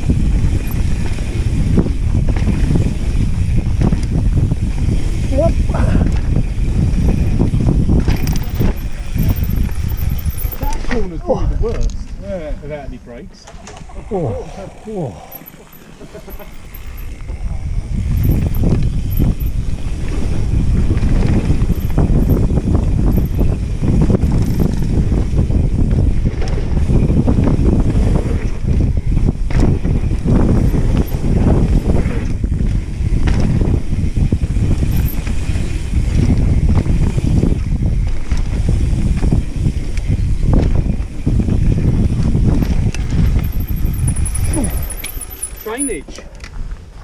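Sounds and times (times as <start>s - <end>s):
bike knocking and rattling: 0.0s - 12.4s, 15.2s - 47.0s
tyres rumbling on dirt: 0.0s - 47.0s
wind buffeting microphone: 0.0s - 47.0s.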